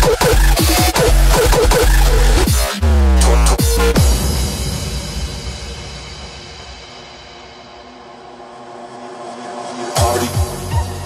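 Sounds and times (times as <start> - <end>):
bass: 0.0 - 6.7, 9.8 - 11.0.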